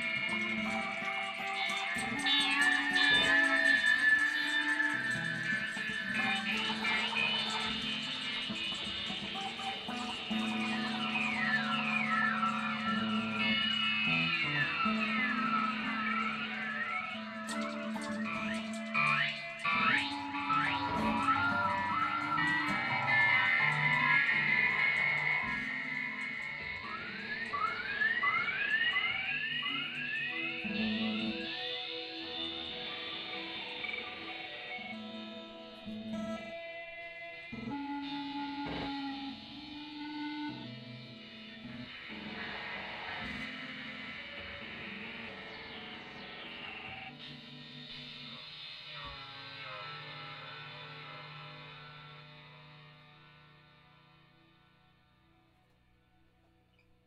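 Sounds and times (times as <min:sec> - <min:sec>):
electric guitar with effects: 0:00.0 - 0:57.0.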